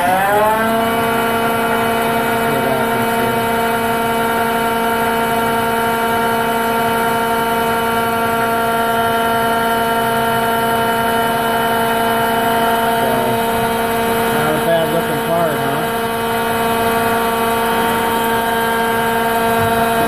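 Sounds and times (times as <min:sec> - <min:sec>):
lathe machine hum: 0:00.0 - 0:20.0.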